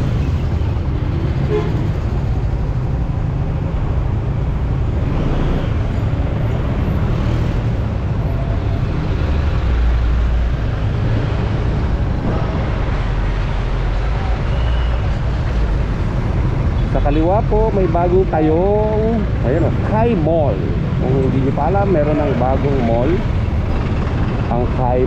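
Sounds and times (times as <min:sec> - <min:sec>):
traffic noise: 0:00.0 - 0:25.0
wind buffeting microphone: 0:10.4 - 0:14.5.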